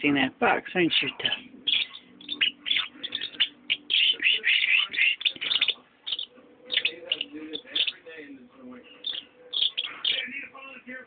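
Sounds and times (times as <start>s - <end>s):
parrotlets chirping: 0.9s - 8.2s, 8.9s - 10.5s.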